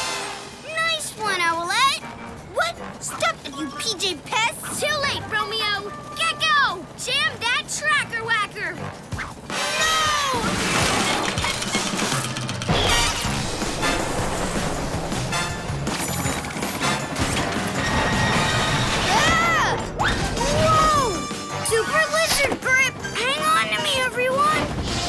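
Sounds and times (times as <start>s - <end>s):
fast cartoon music: 0.0s - 25.0s.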